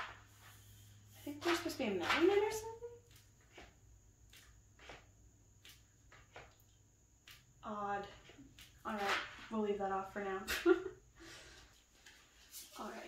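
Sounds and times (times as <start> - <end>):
woman making wordless sounds: 1.2 - 3.1.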